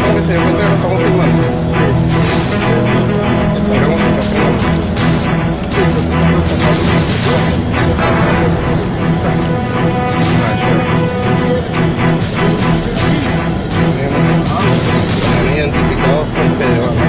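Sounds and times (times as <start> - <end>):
music with regular beat: 0.0 - 17.0.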